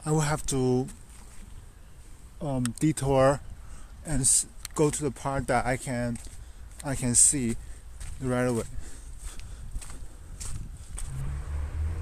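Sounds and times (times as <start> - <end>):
footsteps on gravel: 0.8 - 1.5, 4.8 - 11.3.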